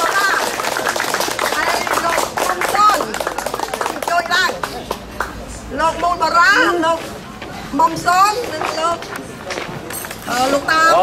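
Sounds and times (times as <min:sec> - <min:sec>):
people clapping: 0:00.0 - 0:05.5
lively talking: 0:00.0 - 0:11.0.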